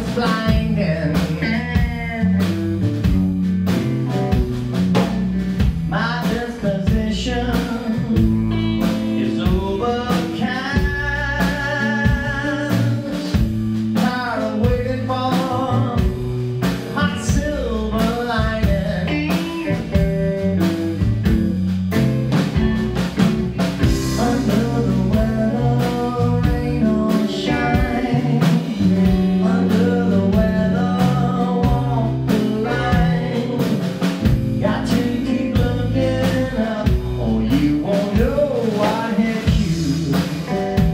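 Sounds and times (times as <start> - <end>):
person singing: 0.0 - 2.6, 5.9 - 16.2, 16.9 - 20.1, 23.8 - 40.9
blues band playing: 0.0 - 40.9.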